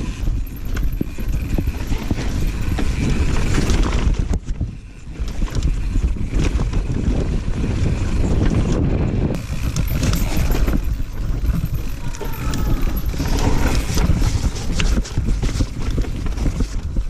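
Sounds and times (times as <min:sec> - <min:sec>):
bike rattling and knocking: 0:00.0 - 0:17.0
bike tyres rolling on dirt: 0:00.0 - 0:17.0
wind buffeting microphone: 0:00.0 - 0:17.0.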